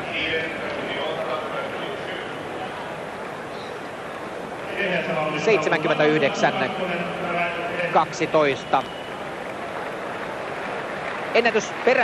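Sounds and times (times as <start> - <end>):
stadium crowd noise: 0.0 - 12.0
man talking: 4.7 - 8.9.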